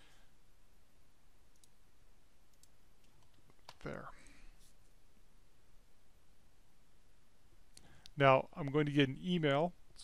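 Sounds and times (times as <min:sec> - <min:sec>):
low background hiss: 0:00.0 - 0:10.0
computer mouse clicks: 0:01.5 - 0:01.8, 0:02.5 - 0:04.0.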